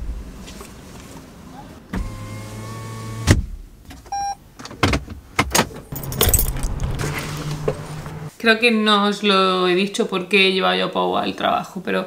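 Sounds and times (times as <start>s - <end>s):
short electronic beep: 4.1s - 4.4s
handling rustle: 5.9s - 8.3s
keys jingling: 5.9s - 8.3s
low hum: 5.9s - 8.3s.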